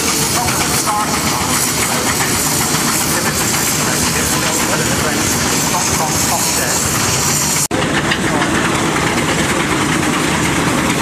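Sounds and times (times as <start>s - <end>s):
hiss of steam: 0.0s - 7.7s
steam engine exhaust chuffing: 0.0s - 11.0s.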